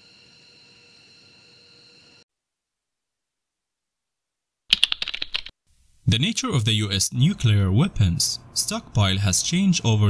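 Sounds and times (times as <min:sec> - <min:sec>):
faint background hiss: 0:05.7 - 0:10.0.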